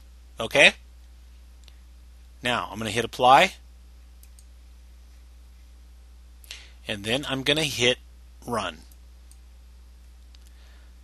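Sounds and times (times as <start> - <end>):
low electrical hum: 0.0 - 11.0
computer mouse click: 4.2 - 4.5.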